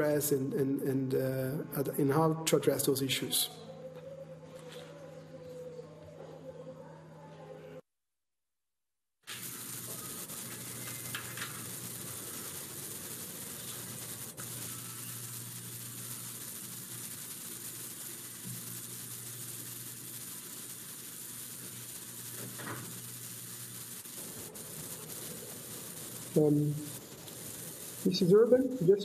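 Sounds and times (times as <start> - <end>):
microphone line hiss: 9.3 - 29.0.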